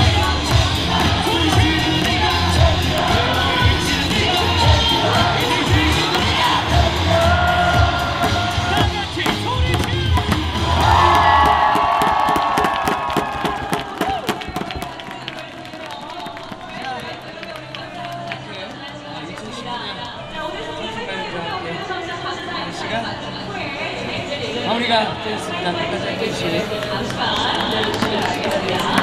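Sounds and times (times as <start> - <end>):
cheer song with heavy bass: 0.0 - 15.3
stadium crowd cheering: 0.0 - 20.3, 26.1 - 29.0.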